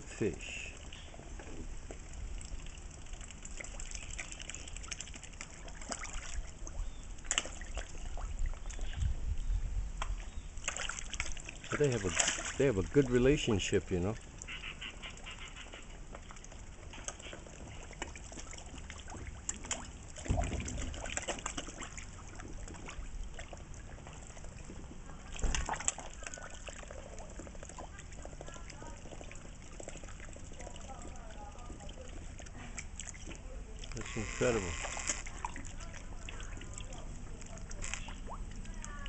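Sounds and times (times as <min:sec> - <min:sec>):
water splashing and slurping: 0:00.0 - 0:39.0.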